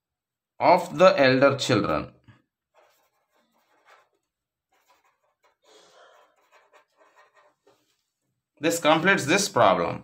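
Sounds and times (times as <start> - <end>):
pen scratching on paper: 2.6 - 8.1.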